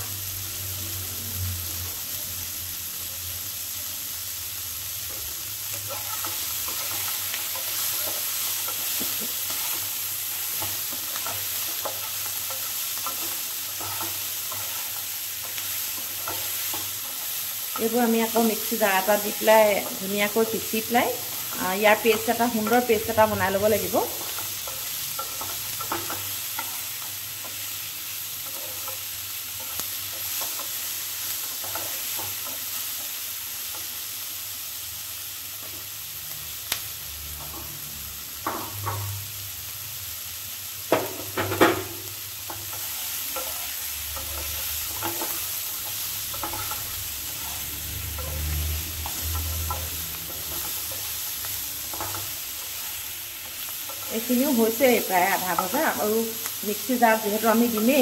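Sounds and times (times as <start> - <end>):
food sizzling in a pan: 0.0 - 58.0
spatula stirring: 5.7 - 32.7, 42.5 - 55.8.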